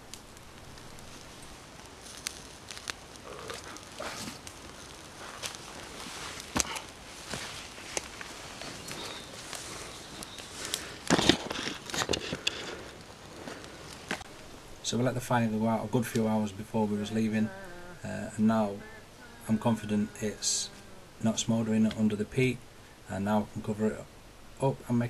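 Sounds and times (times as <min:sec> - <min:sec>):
sharp pops: 0:00.0 - 0:08.3
campfire crackling: 0:00.0 - 0:25.0.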